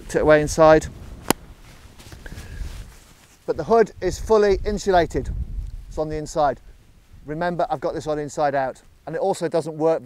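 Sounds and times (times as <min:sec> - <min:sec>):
low wind rumble on microphone: 0:00.0 - 0:09.0
jacket hood rustling: 0:01.0 - 0:03.6.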